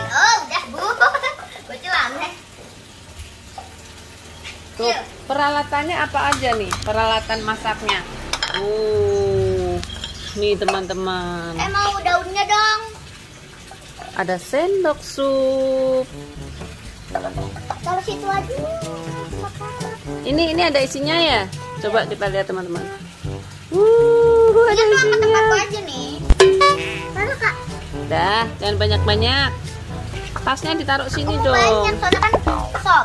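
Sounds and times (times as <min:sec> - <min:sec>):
background music: 0:00.0 - 0:00.9, 0:15.3 - 0:33.0
clay pots clinking and scraping: 0:06.2 - 0:11.8, 0:17.0 - 0:18.4, 0:30.2 - 0:33.0.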